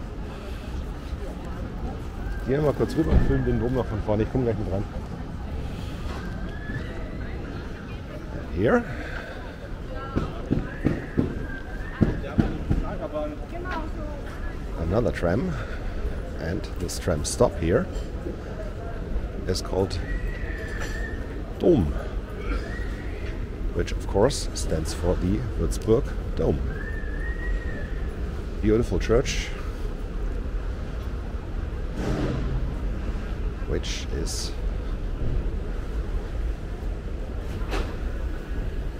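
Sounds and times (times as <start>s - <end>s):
traffic hum: 0.0s - 38.9s
people talking: 33.7s - 34.6s.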